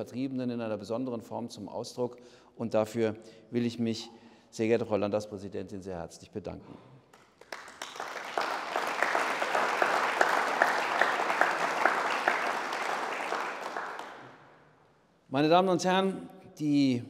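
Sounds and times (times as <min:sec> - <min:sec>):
audience applauding: 0:07.2 - 0:14.6.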